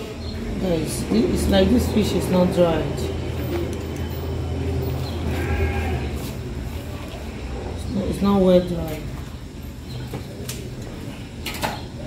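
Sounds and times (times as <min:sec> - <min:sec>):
short bleat: 0:05.3 - 0:06.1.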